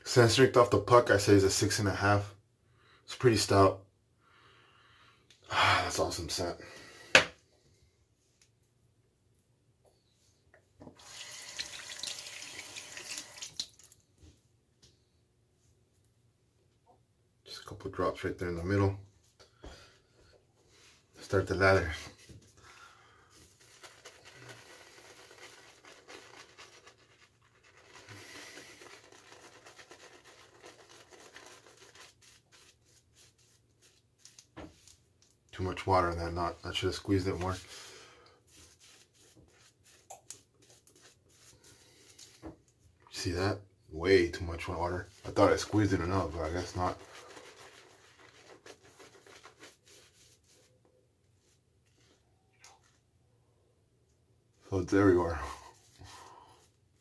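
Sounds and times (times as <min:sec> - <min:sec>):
shaving brush swishing lather: 0:23.3 - 0:35.0, 0:35.7 - 0:42.4, 0:44.6 - 0:50.8.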